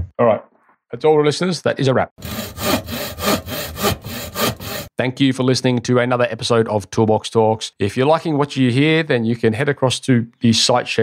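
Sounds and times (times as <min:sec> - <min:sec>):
hand saw cutting wood: 0:02.2 - 0:05.0.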